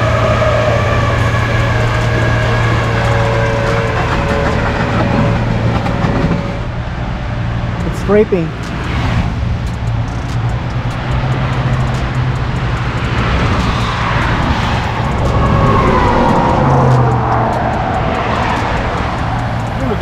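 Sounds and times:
tow truck engine running: 0.0s - 20.0s.

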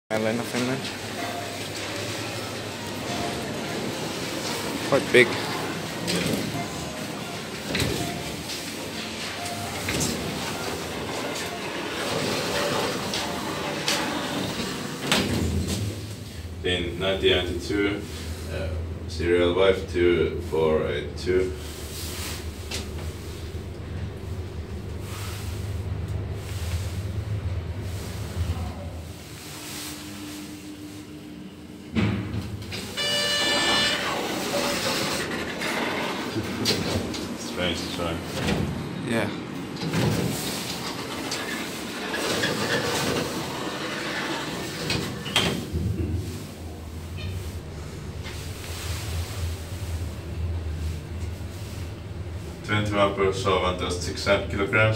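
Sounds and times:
elevator doors rolling shut: 0.1s - 54.9s
steady high tone: 32.8s - 34.7s.

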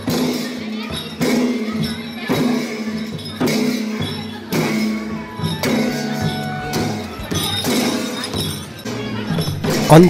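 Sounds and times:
background music: 4.4s - 10.0s.

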